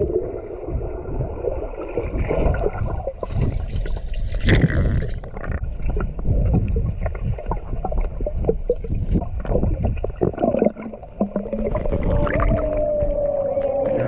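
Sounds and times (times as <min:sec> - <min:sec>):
muffled underwater rushing water: 0:00.0 - 0:14.0.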